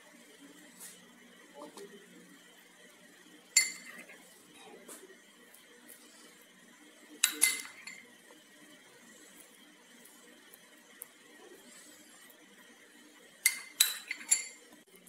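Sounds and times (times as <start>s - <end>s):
spoon clinking glass bowl: 3.6s - 4.1s, 7.2s - 8.1s, 13.4s - 14.7s.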